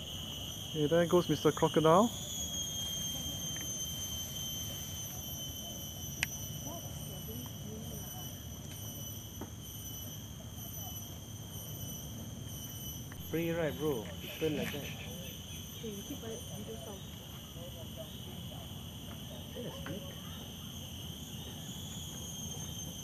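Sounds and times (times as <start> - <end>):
high-pitched whine: 0.0 - 23.0.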